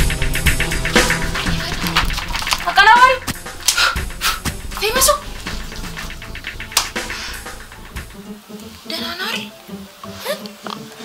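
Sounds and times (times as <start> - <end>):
breathy puffs: 3.4 - 7.9.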